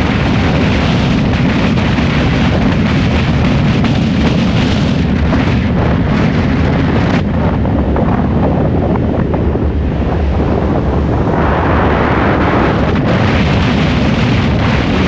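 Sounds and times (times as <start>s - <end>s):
low road rumble: 0.0s - 15.0s
wind buffeting microphone: 0.0s - 15.0s.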